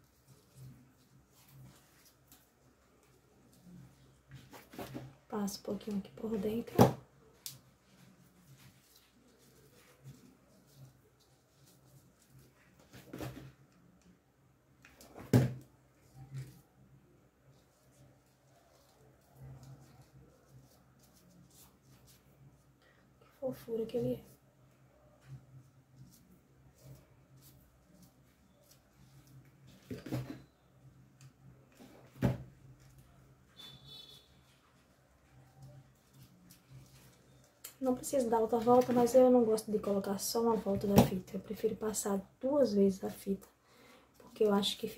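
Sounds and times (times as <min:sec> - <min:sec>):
ribbon rustling: 0:00.0 - 0:14.1, 0:14.8 - 0:39.2.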